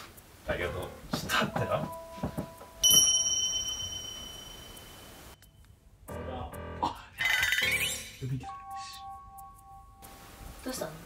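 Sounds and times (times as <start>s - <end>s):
high bell-like ding: 2.8s - 5.4s.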